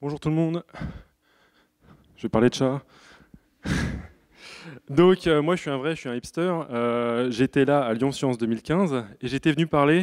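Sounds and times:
man breathing into microphone: 0:00.7 - 0:02.2
man speaking: 0:02.2 - 0:02.9, 0:04.7 - 0:10.0.

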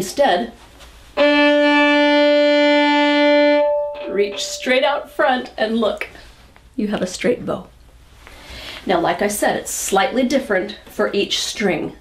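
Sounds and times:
violin bowed note: 0:01.2 - 0:05.4.

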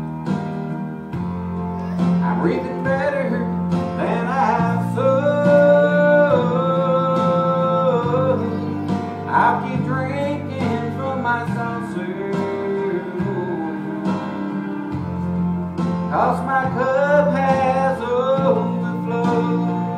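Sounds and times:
acoustic guitar: 0:00.0 - 0:19.9
man singing into a microphone: 0:02.0 - 0:15.1, 0:15.8 - 0:19.9.

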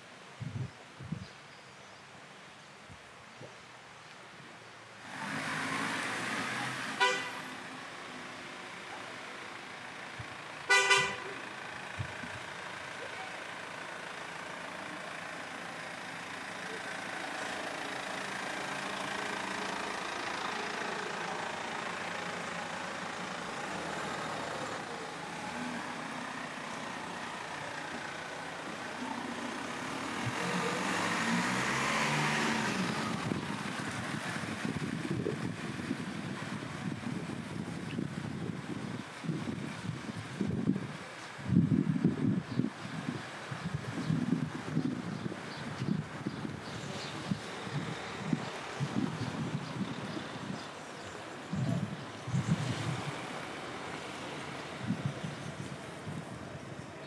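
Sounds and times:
street traffic: 0:00.0 - 0:57.0
tyres swishing on wet road: 0:02.2 - 0:57.0
car horn toots: 0:07.0 - 0:07.5, 0:10.7 - 0:11.3.

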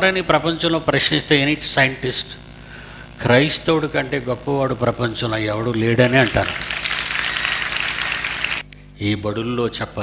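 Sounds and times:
audience applause: 0:05.7 - 0:08.6.

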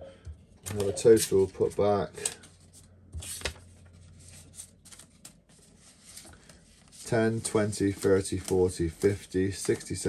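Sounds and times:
banknotes rustling: 0:00.6 - 0:10.0.

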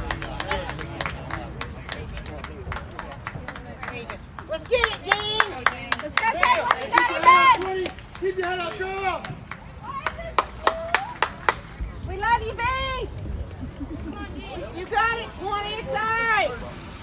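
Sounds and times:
rhythmic hand clapping: 0:00.0 - 0:11.8.

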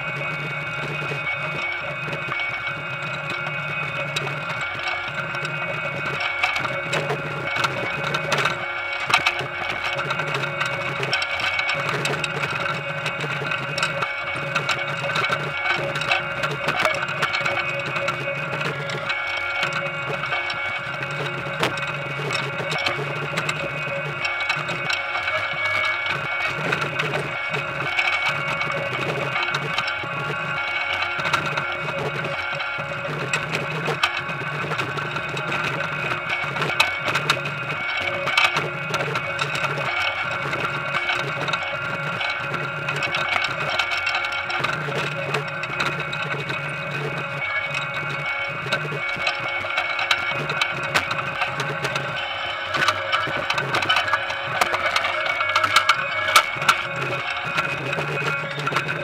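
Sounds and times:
harvester mechanical whine: 0:00.0 - 0:59.0.

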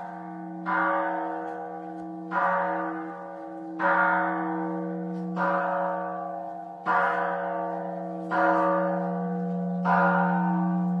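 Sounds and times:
large bell ringing: 0:00.0 - 0:11.0.

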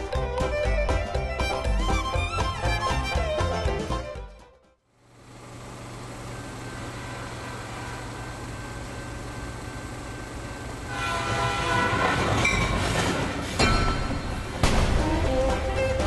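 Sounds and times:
train rumbling: 0:10.5 - 0:16.0
train horn blowing: 0:10.8 - 0:13.2.

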